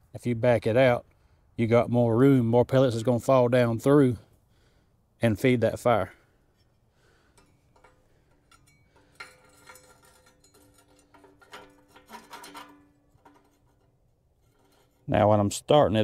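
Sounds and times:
light metallic ring: 6.2 - 15.1
metal clicking and scraping: 6.4 - 15.4.

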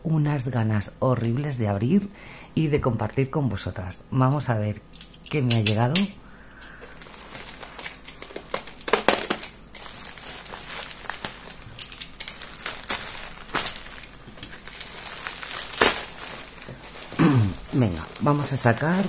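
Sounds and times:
plastic bag crinkling: 6.7 - 19.0.

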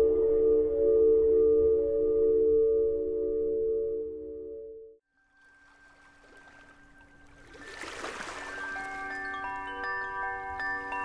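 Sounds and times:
wind chimes ringing: 6.4 - 11.0.

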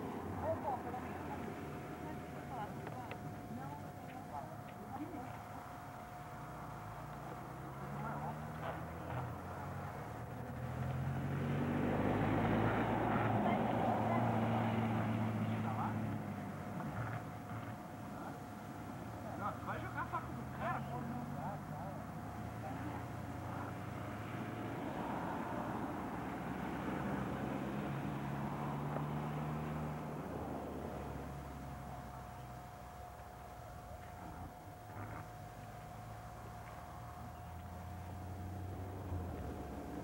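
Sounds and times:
vehicle engine running: 0.0 - 40.0
faint voices of people: 0.3 - 6.5, 7.2 - 9.6.

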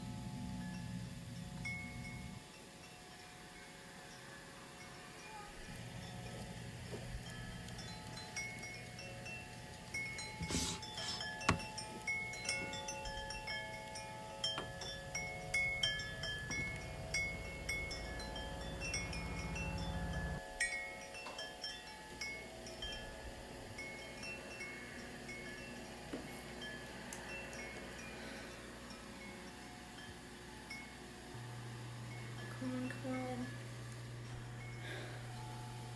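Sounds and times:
chimes tinkling: 0.0 - 35.9
low drone: 12.8 - 20.7.

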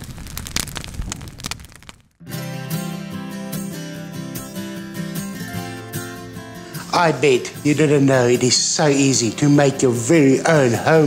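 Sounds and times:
low rush of flame: 0.0 - 2.2
wood fire crackling and popping: 0.0 - 2.2.

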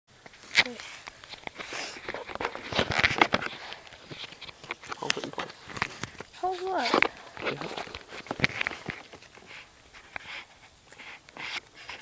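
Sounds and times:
device handling clicks and rustling: 0.2 - 10.4.

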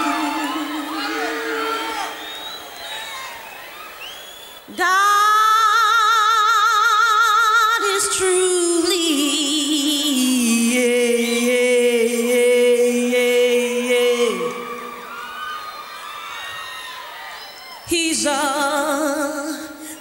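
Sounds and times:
woman singing a long note: 0.0 - 2.2, 4.7 - 15.3, 17.9 - 20.0
audience cheering and whooping: 0.0 - 4.7, 13.6 - 18.1.

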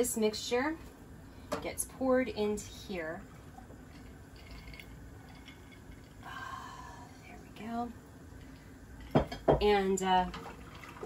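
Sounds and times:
liquid pouring into a saucepan: 3.0 - 6.3, 10.1 - 11.0.

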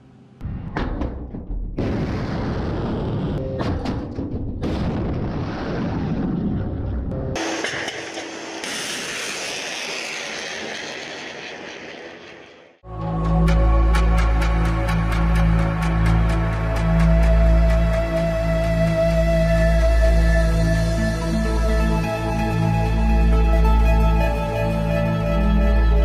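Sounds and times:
missile launch blast: 1.8 - 3.4, 4.6 - 11.4
rocket motor rushing: 7.4 - 12.8.

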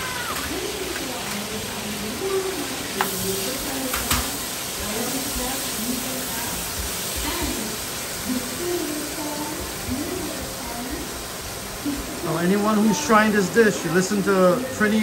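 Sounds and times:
onions sizzling in hot oil: 0.0 - 15.0.

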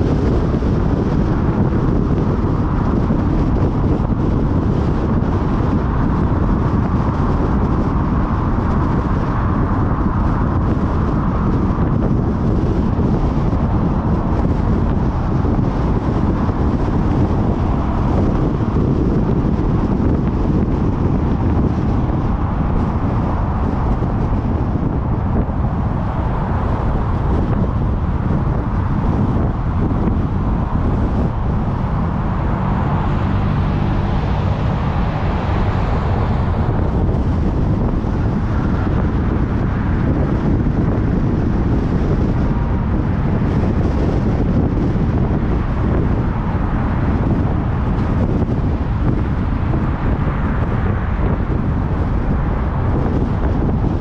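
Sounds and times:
car road noise: 0.0 - 54.0
low hum: 0.0 - 54.0
wind noise on microphone: 0.0 - 54.0.

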